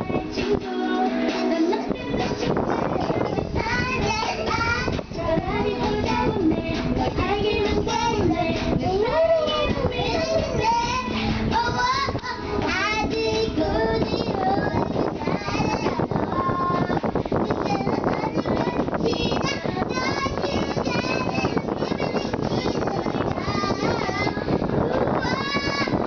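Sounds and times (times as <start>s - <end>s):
backing music: 0.0s - 26.0s
girl singing: 0.0s - 26.0s.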